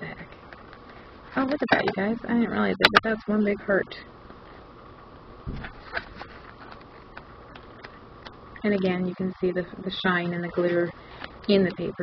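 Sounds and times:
paper pages rustling: 0:05.6 - 0:08.0.

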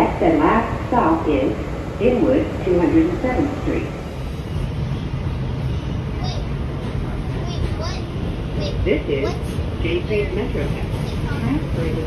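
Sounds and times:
subway car rumbling: 0:00.0 - 0:12.0.

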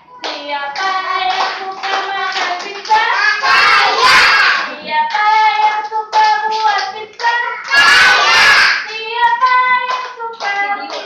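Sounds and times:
woman singing: 0:00.2 - 0:03.2, 0:04.7 - 0:07.7, 0:08.9 - 0:11.0
hand clapping: 0:00.2 - 0:04.1, 0:05.1 - 0:11.0
children singing: 0:00.8 - 0:05.4, 0:07.1 - 0:08.9.

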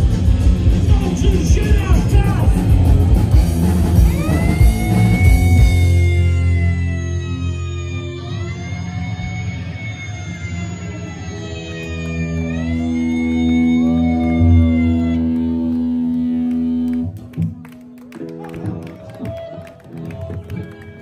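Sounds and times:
punk rock band ringing chord: 0:00.0 - 0:09.6
electric guitar gliding tones: 0:00.0 - 0:21.0.

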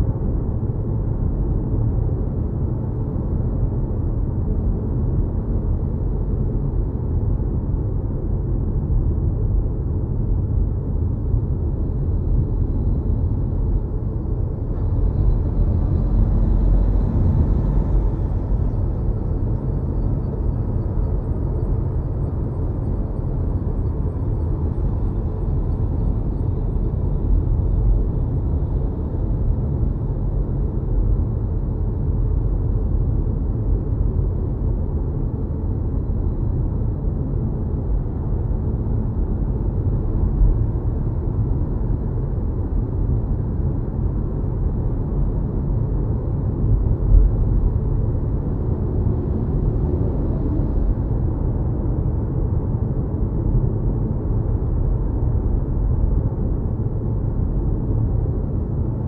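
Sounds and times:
road rumble of tyres and wind: 0:00.0 - 0:59.0.

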